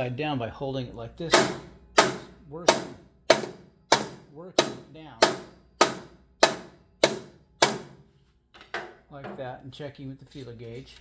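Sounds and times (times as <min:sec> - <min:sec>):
hammer striking metal: 0:01.2 - 0:08.0.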